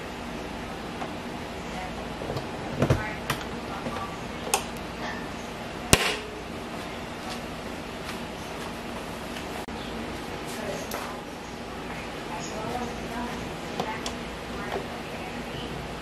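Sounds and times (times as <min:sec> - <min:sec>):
steady background noise: 0:00.0 - 0:16.0.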